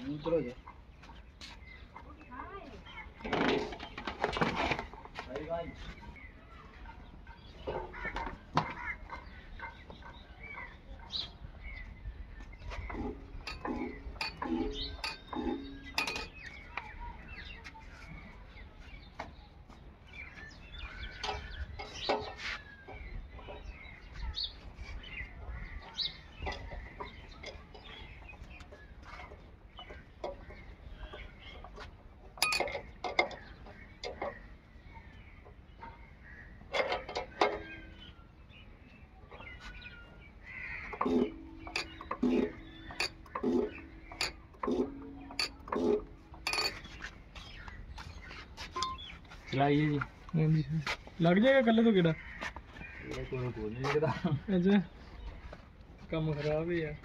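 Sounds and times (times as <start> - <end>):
chickens clucking: 0.0 - 55.6.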